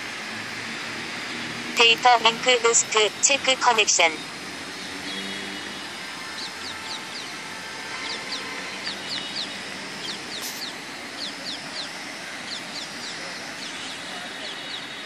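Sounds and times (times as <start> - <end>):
outdoor background hum: 0.0 - 15.0
small birds chirping: 5.0 - 15.0.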